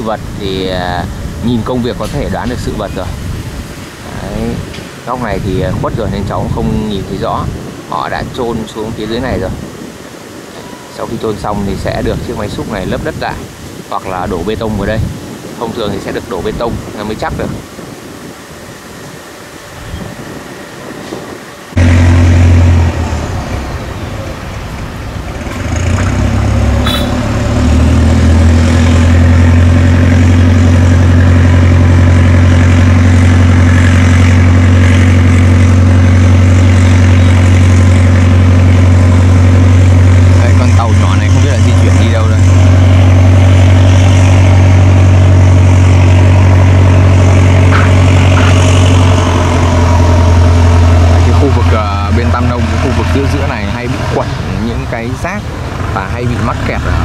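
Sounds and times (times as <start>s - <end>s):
boat engine droning: 0.0s - 57.0s.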